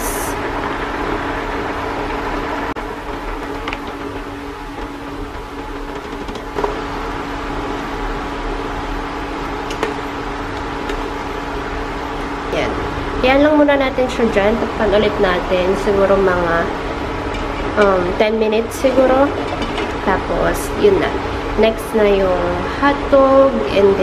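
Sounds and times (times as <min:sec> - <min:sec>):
soup boiling in a pot: 0:00.1 - 0:24.0.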